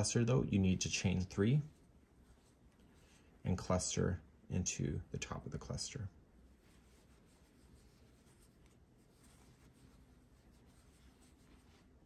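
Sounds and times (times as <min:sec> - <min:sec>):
yarn rustling over crochet hook: 0:06.5 - 0:12.0.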